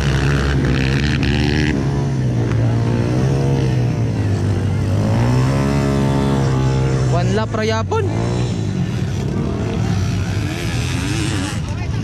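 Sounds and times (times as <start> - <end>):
dirt-bike engines revving: 0.0 - 12.0.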